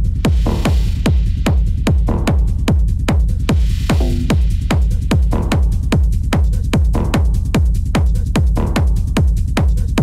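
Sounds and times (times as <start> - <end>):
dark techno music: 0.0 - 10.0
deep kick drum: 0.0 - 10.0.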